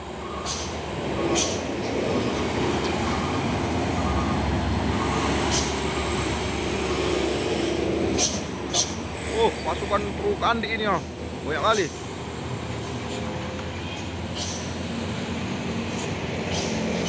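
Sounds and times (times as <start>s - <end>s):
truck engines passing: 0.0s - 17.0s.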